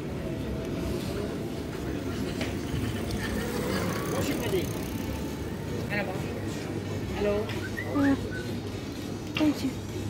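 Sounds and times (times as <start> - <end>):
indistinct voices of passers-by: 0.0 - 10.0
low rumble of street noise: 0.0 - 10.0.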